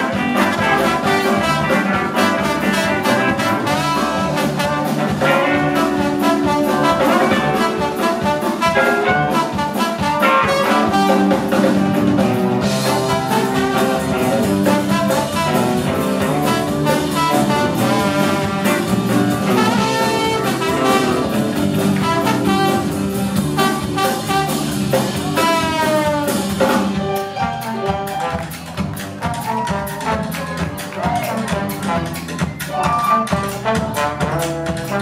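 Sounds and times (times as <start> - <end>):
trombone solo: 0.0 - 11.6, 12.6 - 26.6, 33.0 - 35.0
drums bass and keys: 0.0 - 35.0.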